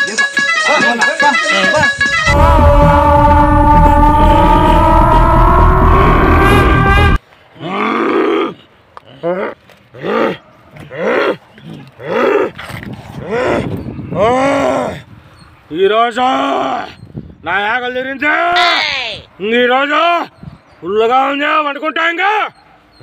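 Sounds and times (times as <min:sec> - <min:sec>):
dramatic music sting with rumble: 0:02.3 - 0:07.2
man roaring: 0:02.3 - 0:11.4, 0:12.0 - 0:12.6, 0:13.2 - 0:15.1.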